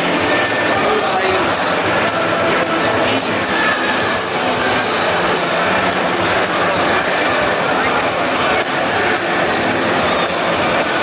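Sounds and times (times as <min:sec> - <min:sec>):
music over stadium loudspeakers: 0:00.0 - 0:11.0.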